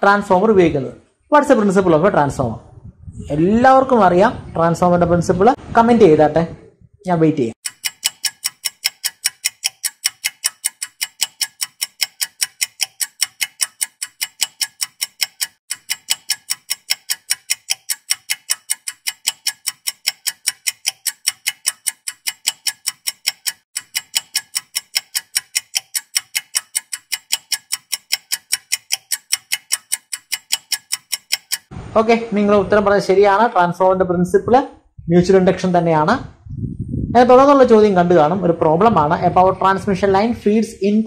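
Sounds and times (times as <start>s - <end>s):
clock ticking: 7.6s - 31.7s.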